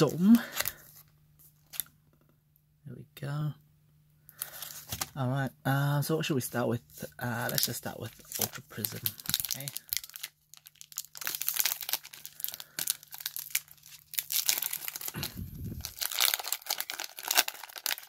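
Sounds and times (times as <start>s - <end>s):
foil pack crinkling and tearing: 0.0s - 1.0s, 4.4s - 5.1s, 7.2s - 18.0s.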